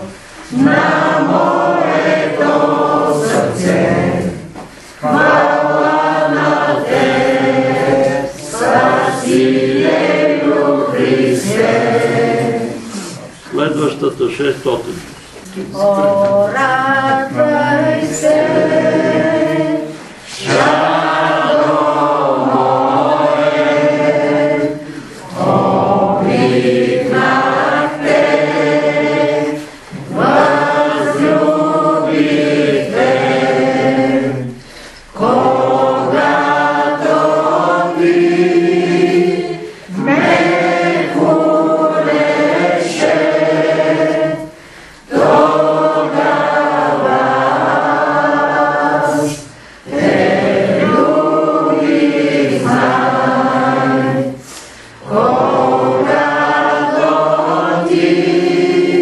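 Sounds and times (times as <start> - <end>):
group singing a hymn: 0.0 - 59.0.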